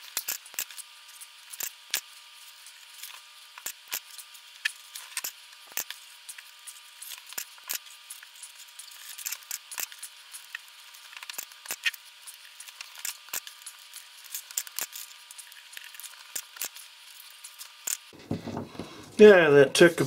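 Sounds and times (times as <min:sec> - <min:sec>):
plastic tape crackling and clicking: 0:03.0 - 0:18.1.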